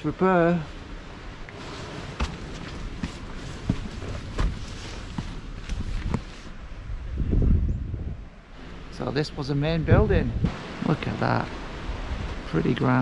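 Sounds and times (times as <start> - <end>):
wind noise on microphone: 1.1 - 13.0
footsteps on outdoor path: 1.5 - 6.6.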